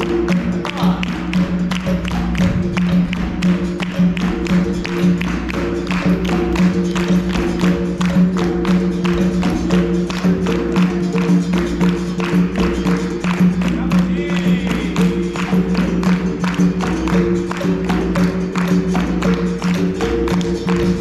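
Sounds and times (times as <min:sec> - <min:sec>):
hand drum: 0:00.0 - 0:21.0
people clapping in rhythm: 0:00.0 - 0:21.0.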